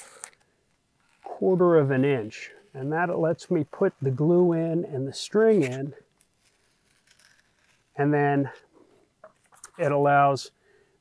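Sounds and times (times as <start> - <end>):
knife blade slicing foam: 5.4 - 8.0.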